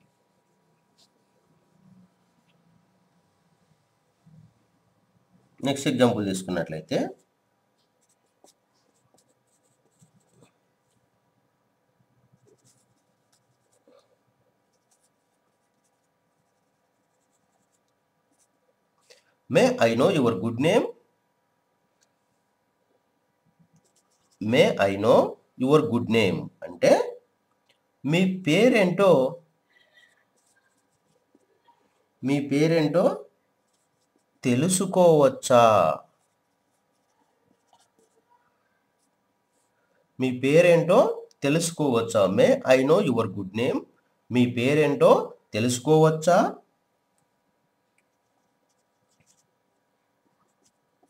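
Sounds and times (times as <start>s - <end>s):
man speaking: 5.6s - 7.2s, 19.5s - 21.0s, 24.4s - 27.2s, 28.0s - 29.4s, 32.2s - 33.3s, 34.4s - 36.1s, 40.2s - 46.6s
marker pen scratching on whiteboard: 7.0s - 11.1s, 12.3s - 18.7s, 23.6s - 25.3s, 30.3s - 31.6s, 33.6s - 38.4s, 47.9s - 51.0s
marker pen squeaking on whiteboard: 36.2s - 38.4s, 48.0s - 49.5s.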